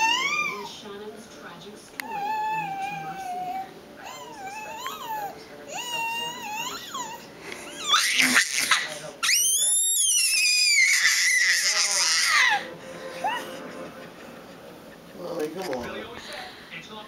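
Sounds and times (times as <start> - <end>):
baby squealing and vocalising: 2.2 - 13.5.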